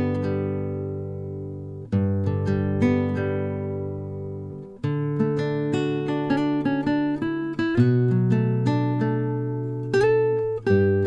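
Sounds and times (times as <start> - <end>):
plucked guitar music: 0.0 - 11.0.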